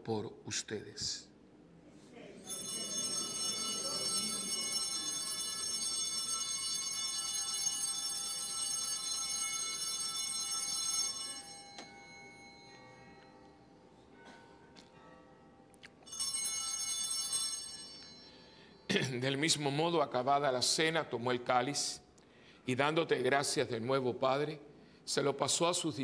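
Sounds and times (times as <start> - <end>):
altar bells ringing: 2.4 - 19.9.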